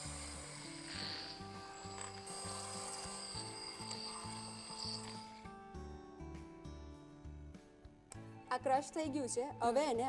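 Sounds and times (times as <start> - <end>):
electric hand blender running: 0.0 - 5.4
background music: 0.0 - 10.0.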